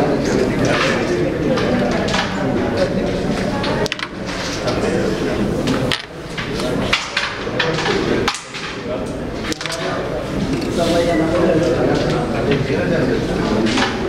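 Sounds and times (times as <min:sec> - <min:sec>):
indistinct background talk: 0:00.0 - 0:14.0
carrom striker clicking coins: 0:03.7 - 0:04.7, 0:05.8 - 0:06.1.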